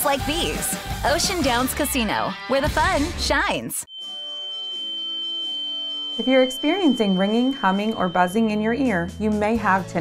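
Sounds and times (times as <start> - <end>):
high-pitched ringing tone: 3.8 - 9.9
soft background music: 5.6 - 10.0.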